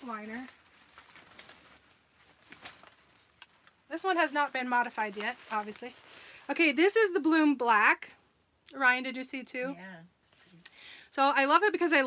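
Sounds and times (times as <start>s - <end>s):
fabric bag rustling and clicking: 0.0s - 6.3s.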